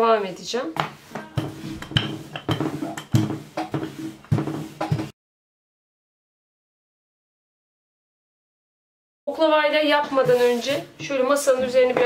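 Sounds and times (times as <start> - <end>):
rolling pin knocking on tabletop: 0.8 - 5.1.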